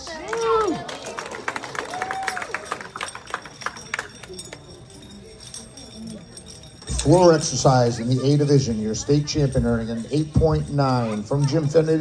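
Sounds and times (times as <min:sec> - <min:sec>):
audience applause: 0:00.0 - 0:04.1
low crowd chatter: 0:00.0 - 0:12.0.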